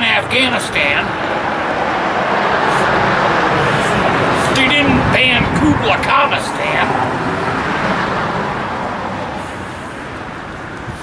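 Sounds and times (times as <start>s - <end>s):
car driving past: 0.8s - 10.8s.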